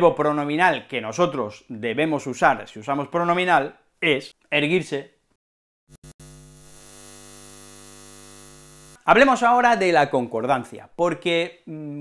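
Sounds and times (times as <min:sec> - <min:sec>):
neon sign electrical hum: 0:06.0 - 0:09.0.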